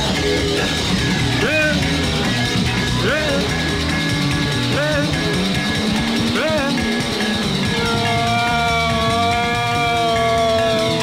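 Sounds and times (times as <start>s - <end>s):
bass line: 0.0s - 11.0s
drums: 0.0s - 11.0s.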